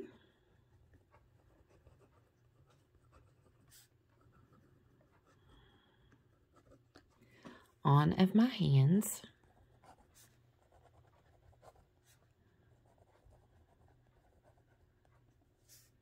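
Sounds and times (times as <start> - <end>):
pen writing on paper: 0.9 - 5.4, 9.4 - 12.2, 12.8 - 15.9.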